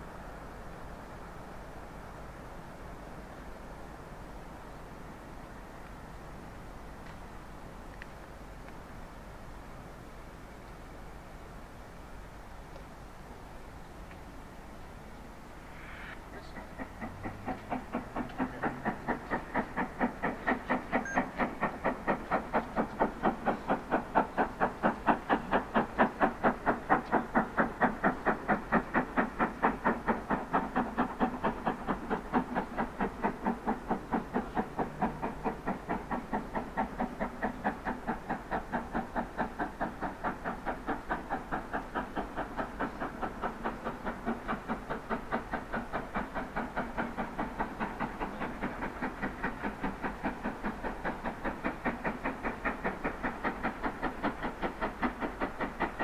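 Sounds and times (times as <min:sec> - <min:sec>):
steam locomotive chuffing: 0:00.0 - 0:56.0.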